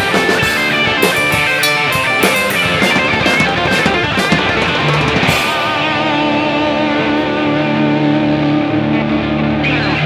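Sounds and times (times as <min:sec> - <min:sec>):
distorted electric guitar chords: 0:00.0 - 0:10.0
guitar sliding sweep: 0:00.0 - 0:10.0.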